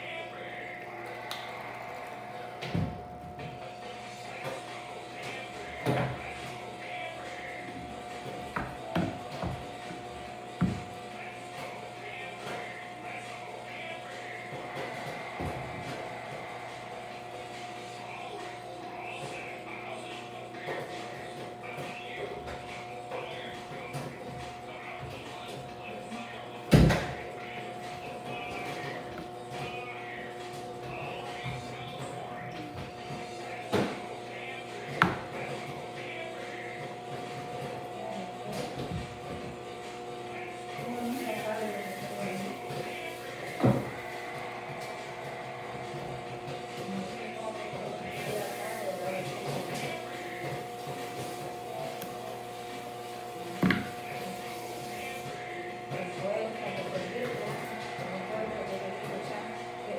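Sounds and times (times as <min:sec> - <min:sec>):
faint indistinct voices: 0:00.0 - 0:59.9
faint music: 0:00.0 - 0:59.9
steady hum: 0:00.0 - 0:59.9.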